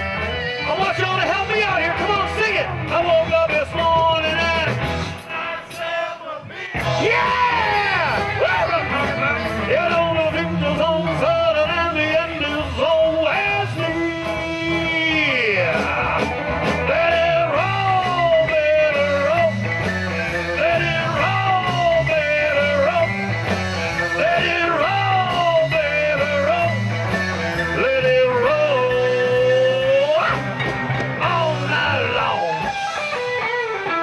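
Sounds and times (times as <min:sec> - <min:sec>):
lead guitar bending notes: 0:00.0 - 0:05.2, 0:06.8 - 0:34.0
live rock band playing: 0:00.0 - 0:34.0.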